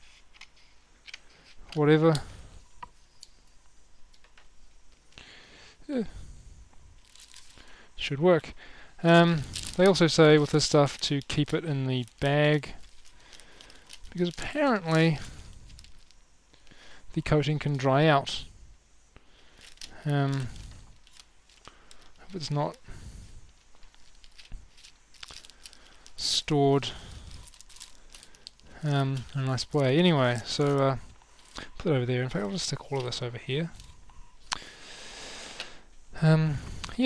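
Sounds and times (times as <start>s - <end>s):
paper rustling and crinkling: 7.0s - 7.7s, 9.1s - 16.2s, 19.5s - 34.6s.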